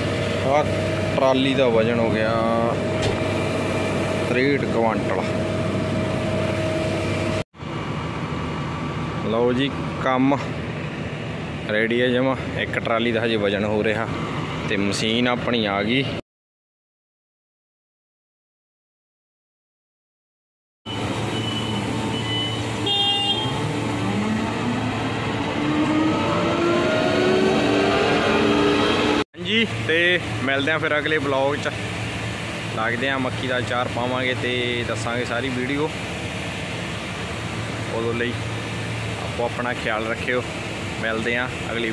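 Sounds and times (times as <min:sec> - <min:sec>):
diesel engine revving: 0:00.0 - 0:12.7, 0:20.9 - 0:41.9.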